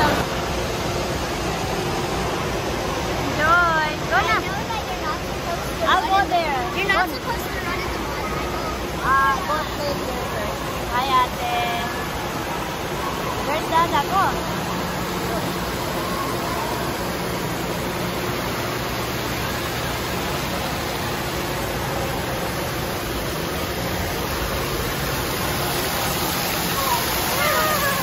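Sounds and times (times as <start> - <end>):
falling and splashing water: 0.0 - 28.0
voices of swimmers: 0.0 - 28.0.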